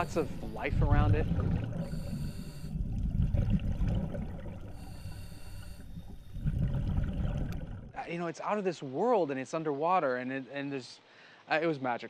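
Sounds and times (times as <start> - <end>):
low rumbling underwater noise: 0.0 - 8.1.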